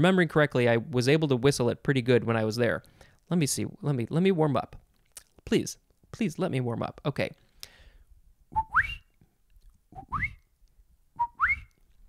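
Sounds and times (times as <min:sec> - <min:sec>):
man whistling frog call: 0:08.5 - 0:09.1, 0:09.9 - 0:10.5, 0:11.2 - 0:11.8.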